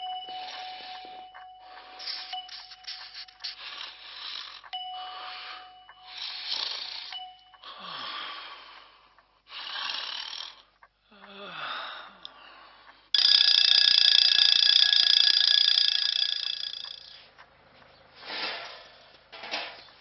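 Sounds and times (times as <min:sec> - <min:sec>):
alarm clock bell ringing: 0:00.0 - 0:08.8, 0:13.2 - 0:17.2
person snoring: 0:00.3 - 0:12.6, 0:13.2 - 0:17.2.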